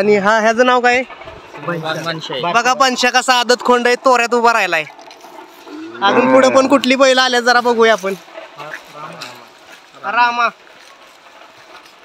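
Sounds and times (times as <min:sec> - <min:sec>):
bull lowing: 0:05.0 - 0:07.1.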